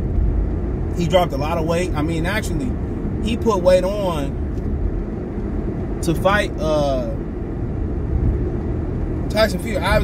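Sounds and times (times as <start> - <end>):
car engine rumble inside cabin: 0.0 - 10.0.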